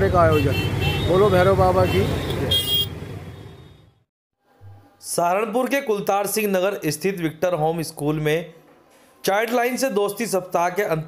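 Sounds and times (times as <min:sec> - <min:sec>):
street traffic rumble: 0:00.0 - 0:04.1
vehicle horn toot: 0:00.2 - 0:04.0.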